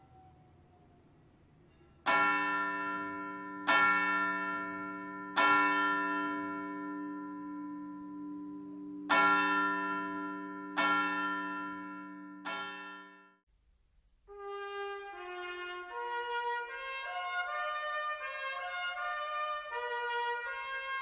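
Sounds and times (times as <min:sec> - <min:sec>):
large church bell tolling: 0:01.7 - 0:13.4.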